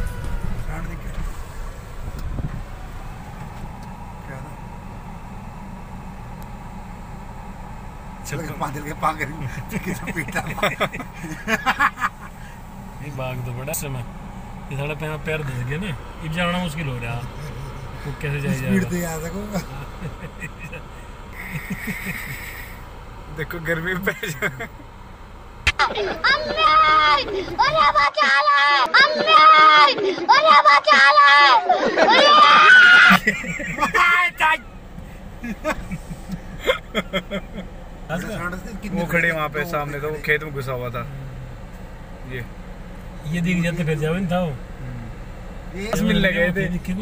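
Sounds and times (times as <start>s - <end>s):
car engine rumble inside cabin: 0.0s - 30.0s, 30.6s - 47.0s.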